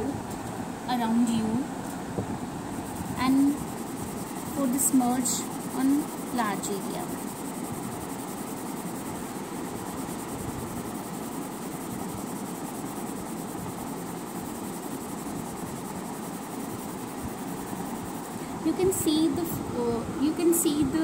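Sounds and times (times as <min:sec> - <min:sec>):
steady background hiss: 0:00.0 - 0:21.0.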